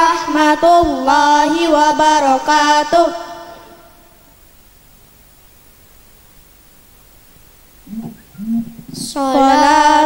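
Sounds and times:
sound system hiss: 0:00.0 - 0:10.0
low murmured vocal sounds: 0:07.8 - 0:10.0.

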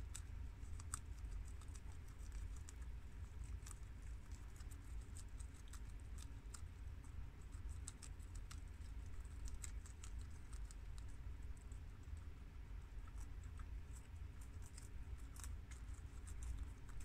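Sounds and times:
guinea pigs crunching lettuce: 0:00.0 - 0:17.0
low steady hum: 0:00.0 - 0:17.0.

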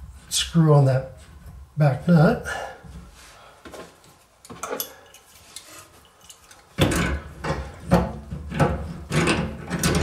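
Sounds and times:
faint metal clinks: 0:04.6 - 0:06.7.

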